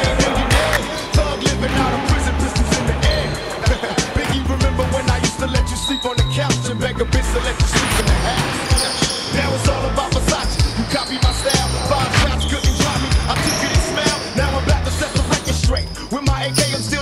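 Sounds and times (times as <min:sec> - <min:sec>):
hip hop music: 0:00.0 - 0:17.0.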